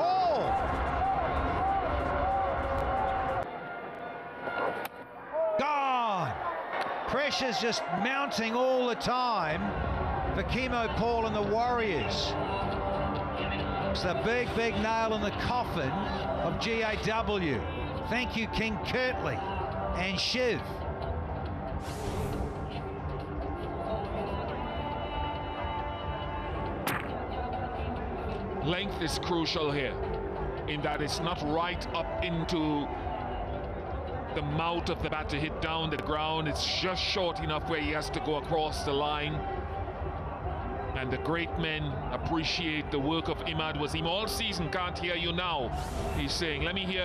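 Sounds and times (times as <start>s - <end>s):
crowd noise: 0.0s - 47.0s
stadium music with heavy bass: 9.6s - 47.0s.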